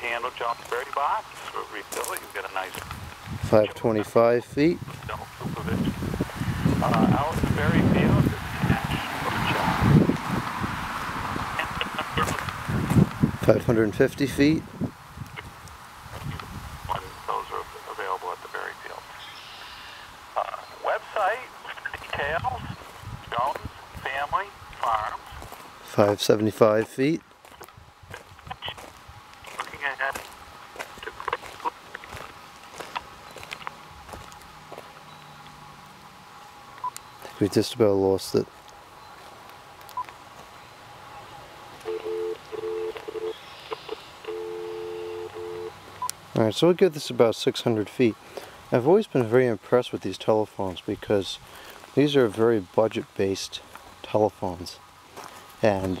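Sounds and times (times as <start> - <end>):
man's voice through phone speaker: 0.0 - 2.8, 3.4 - 6.0, 6.7 - 9.8, 11.6 - 12.5, 13.4 - 14.7, 16.2 - 19.3, 20.4 - 27.2, 29.5 - 30.2, 30.9 - 31.7, 37.3 - 38.4, 55.6 - 56.0
broken two-tone telephone signal: 41.8 - 46.1.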